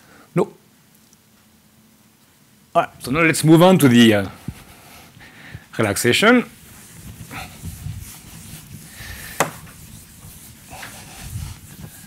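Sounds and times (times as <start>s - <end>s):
low room noise: 0.0s - 12.0s
faint footsteps: 4.3s - 5.8s, 6.5s - 12.0s.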